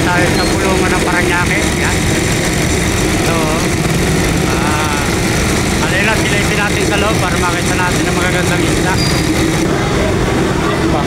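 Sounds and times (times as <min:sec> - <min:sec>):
steady engine hum: 0:00.0 - 0:11.0
voices of many people: 0:00.0 - 0:11.0.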